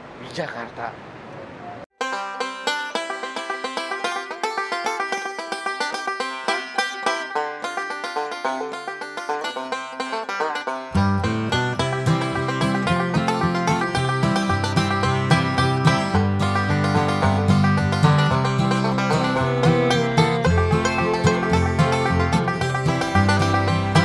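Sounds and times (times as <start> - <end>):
bass part: 11.0 - 24.0
fast tune of sharply struck notes: 18.4 - 24.0.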